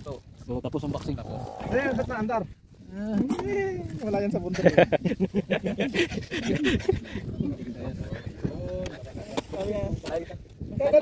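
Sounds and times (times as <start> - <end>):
men talking: 0.0 - 11.0
men laughing loudly: 4.5 - 9.0.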